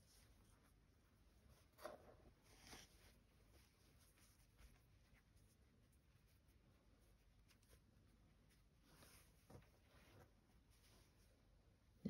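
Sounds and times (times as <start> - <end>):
cloth rustling: 0.0 - 11.6.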